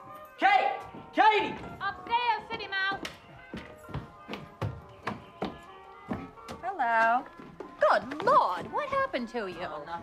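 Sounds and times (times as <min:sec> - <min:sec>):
music with held tones: 0:00.0 - 0:10.0.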